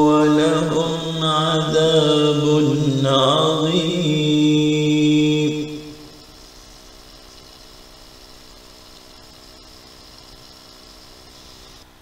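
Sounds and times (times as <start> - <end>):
background hiss: 0.0 - 12.0
faint hum: 0.0 - 12.0.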